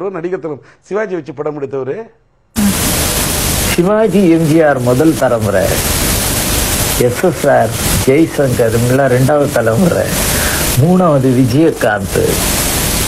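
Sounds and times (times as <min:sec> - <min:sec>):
old recording hiss: 0:00.0 - 0:13.0
man speaking: 0:03.7 - 0:05.8, 0:07.0 - 0:12.4.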